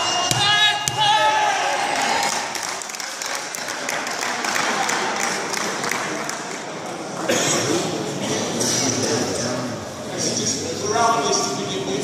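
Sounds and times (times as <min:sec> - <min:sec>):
spectators applauding: 0:02.0 - 0:06.7.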